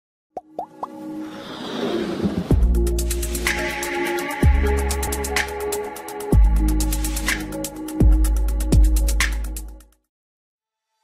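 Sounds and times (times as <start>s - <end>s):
musical build-up: 0.6s - 8.6s.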